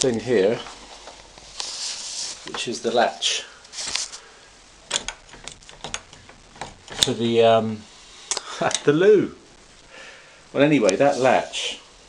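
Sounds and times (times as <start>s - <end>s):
door latch clicking: 4.9s - 6.2s.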